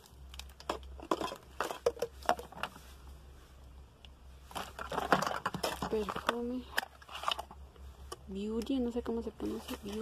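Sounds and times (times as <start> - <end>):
packaging rustling: 4.4 - 7.6.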